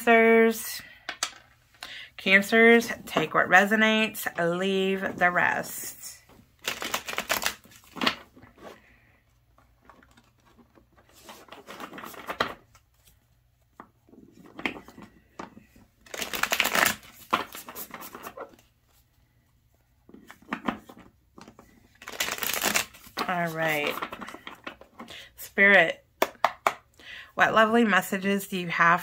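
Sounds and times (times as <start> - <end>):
cards being shuffled: 6.6 - 8.8, 9.6 - 13.2, 13.8 - 18.7, 20.2 - 25.1.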